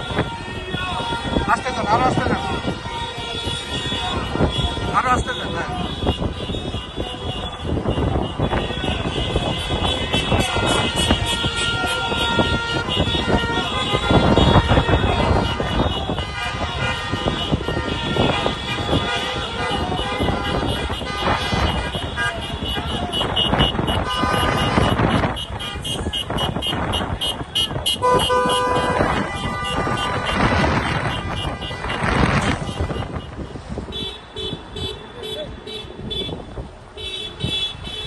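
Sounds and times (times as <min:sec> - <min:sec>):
voices shouting: 0:00.0 - 0:32.9
car horns honking: 0:00.0 - 0:38.0
traffic engine and road noise: 0:00.0 - 0:38.0.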